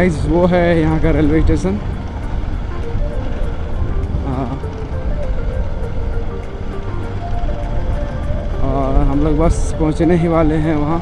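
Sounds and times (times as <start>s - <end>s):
voice: 0.0s - 1.8s, 4.2s - 4.6s, 8.6s - 11.0s
faint background music: 0.0s - 11.0s
motorcycle wind and road noise: 0.0s - 11.0s.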